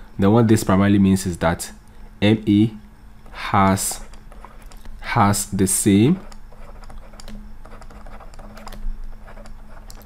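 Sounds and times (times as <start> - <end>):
steady low hum: 0.0 - 10.0
stylus tapping on tablet: 6.3 - 8.8.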